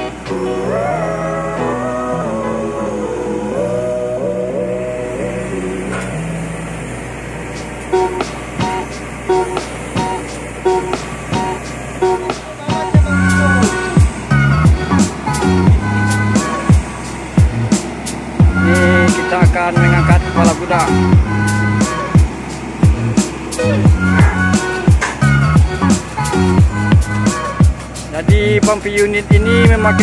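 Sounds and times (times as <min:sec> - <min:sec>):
melodic background music: 0:00.0 - 0:30.0
heavy bass-driven beat: 0:07.5 - 0:30.0
steady drum beat: 0:07.6 - 0:30.0.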